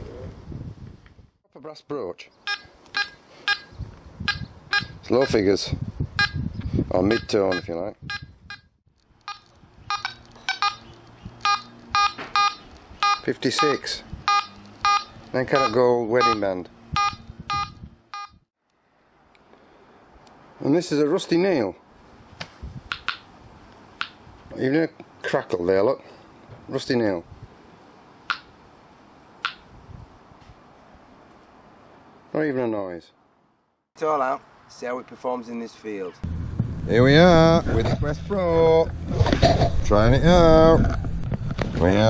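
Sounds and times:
metal detector beeps: 0:02.5 - 0:03.7, 0:04.3 - 0:05.4, 0:07.0 - 0:18.4
sharp click: 0:22.4 - 0:23.3, 0:29.4 - 0:29.7.

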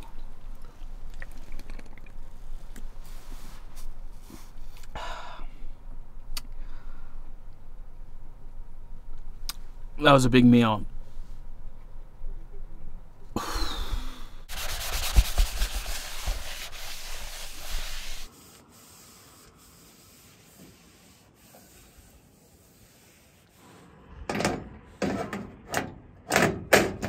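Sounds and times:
paper towel rubbing metal: 0:14.5 - 0:23.7.

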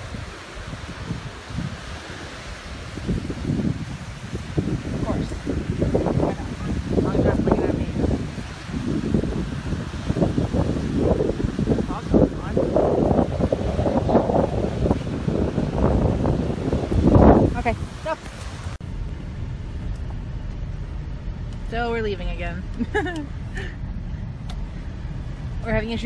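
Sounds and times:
waves surf: 0:00.0 - 0:18.8
wind buffeting microphone: 0:00.0 - 0:26.0.

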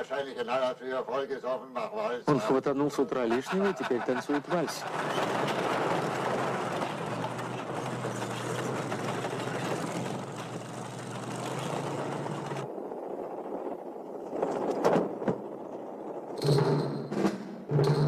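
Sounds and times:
tank engine rumbling: 0:04.4 - 0:13.6.

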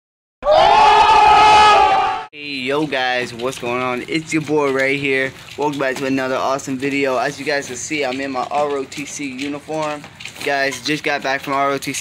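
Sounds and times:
voices shouting long ohh: 0:00.4 - 0:02.3.

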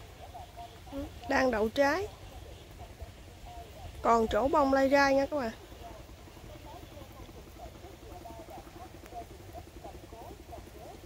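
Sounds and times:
low steady hum: 0:00.0 - 0:11.0
small animals chirping: 0:00.0 - 0:11.0.

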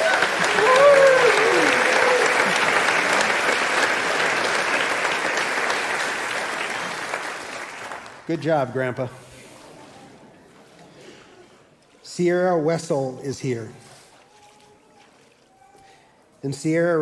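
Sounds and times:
person whooping: 0:00.0 - 0:02.5
crowd clapping and cheering: 0:00.0 - 0:08.3.

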